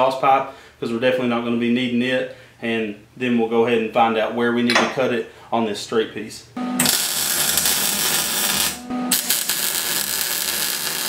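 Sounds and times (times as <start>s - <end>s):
welder steady hum: 6.6s - 11.0s
welder arc crackling: 6.8s - 11.0s.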